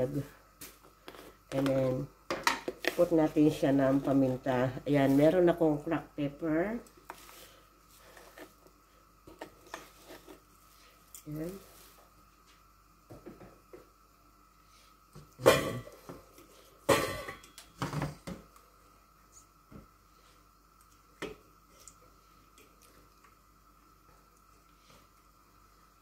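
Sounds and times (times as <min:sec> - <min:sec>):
faint high hum: 0:00.0 - 0:26.0.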